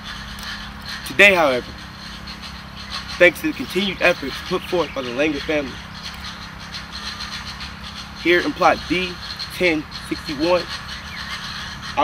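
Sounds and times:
faint constant hum: 0.0s - 12.0s.

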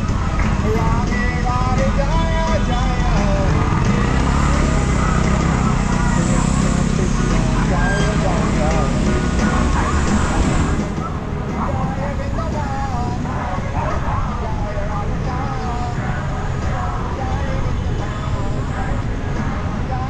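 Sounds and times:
road traffic: 0.0s - 20.0s.

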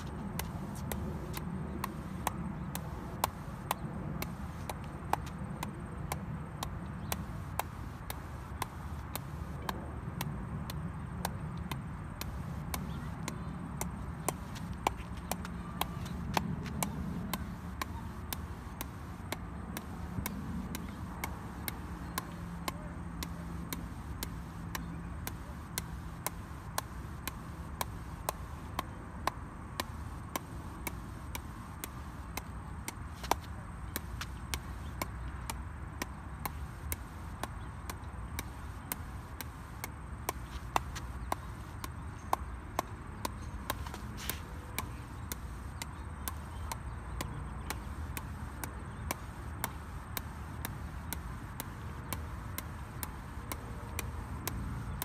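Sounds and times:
steady background noise: 0.0s - 55.0s
ball bouncing off paddle: 0.1s - 55.0s.

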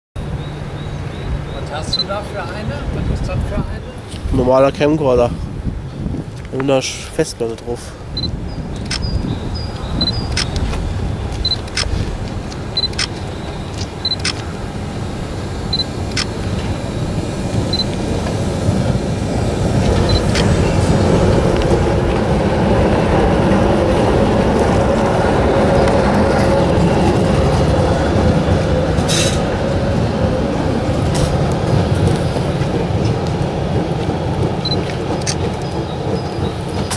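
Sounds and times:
tram rumbling past on rails: 0.2s - 36.9s.

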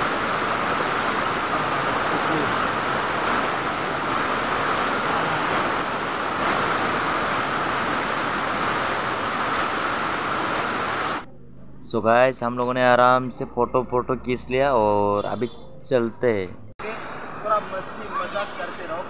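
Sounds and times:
waterfall rushing: 0.0s - 11.3s, 16.8s - 19.0s.

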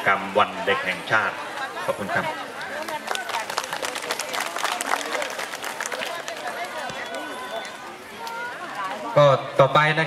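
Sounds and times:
crowd voices: 0.0s - 10.0s
crowd applauding: 2.3s - 8.5s.

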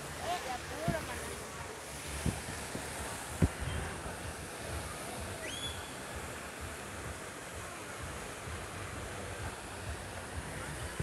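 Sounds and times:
fountain water spraying: 0.0s - 11.0s
rising whistle: 5.4s - 5.9s.

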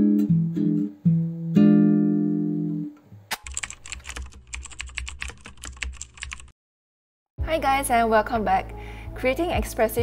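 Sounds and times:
keyboard key clicks: 3.3s - 6.5s.

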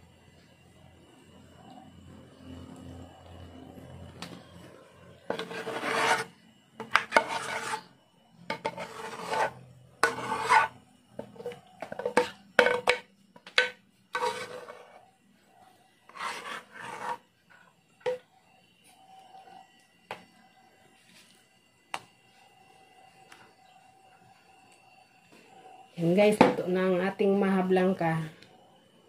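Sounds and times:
metal spoon scraping metal pot: 5.2s - 7.9s, 8.5s - 15.1s, 16.1s - 18.2s.

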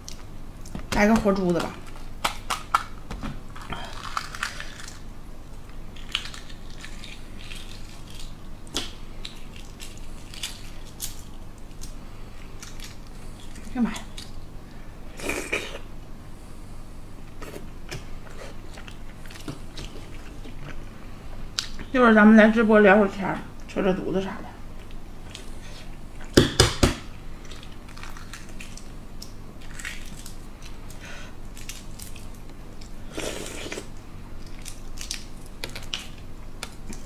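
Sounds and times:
egg shell crackling: 1.3s - 12.0s.

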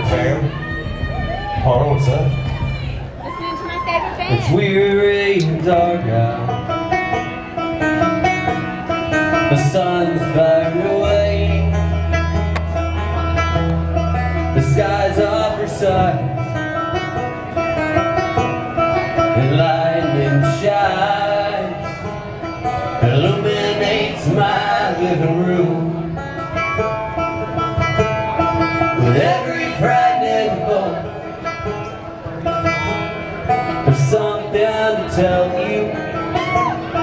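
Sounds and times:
guitar: 0.0s - 37.0s
banjo: 4.3s - 37.0s.

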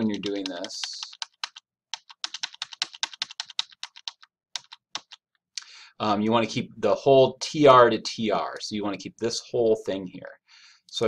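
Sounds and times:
typing on computer keyboard: 0.0s - 5.3s.

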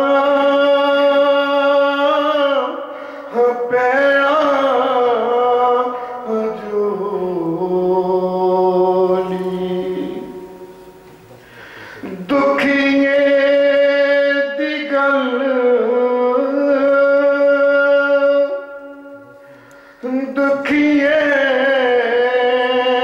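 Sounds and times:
man singing devotional verse: 0.0s - 10.6s, 11.9s - 23.0s.

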